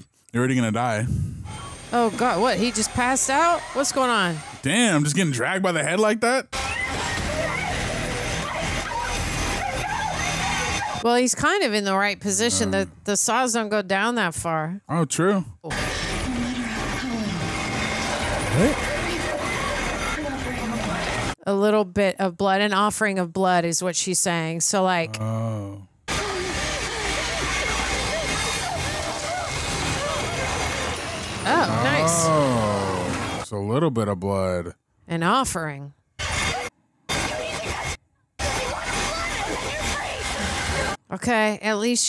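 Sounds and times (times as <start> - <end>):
low rumbling drone: 1.0 - 2.5
strained voice sounds: 12.2 - 13.1, 18.4 - 19.0, 25.0 - 25.9, 31.4 - 33.4.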